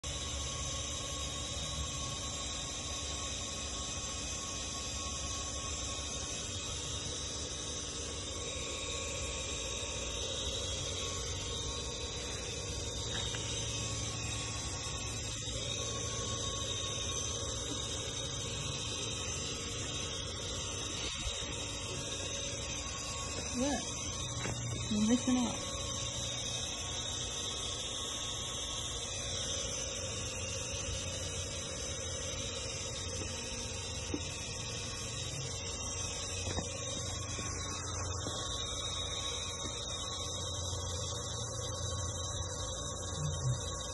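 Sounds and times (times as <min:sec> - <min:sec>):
machinery humming: 0:00.0 - 0:43.9.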